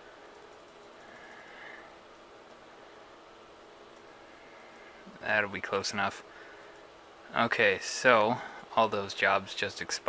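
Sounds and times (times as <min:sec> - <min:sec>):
soft hiss: 0:00.0 - 0:10.0.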